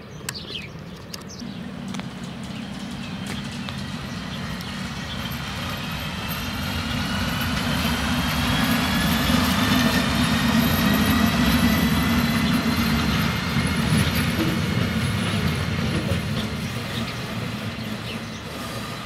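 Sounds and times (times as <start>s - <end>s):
locomotive wheels rumbling on rail: 0.0s - 19.0s
rail clicks: 0.2s - 19.0s
locomotive whine: 1.4s - 19.0s.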